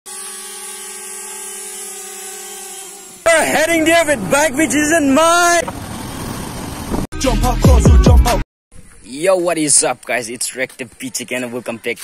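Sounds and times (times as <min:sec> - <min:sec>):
drone propellers buzzing: 0:00.1 - 0:07.1.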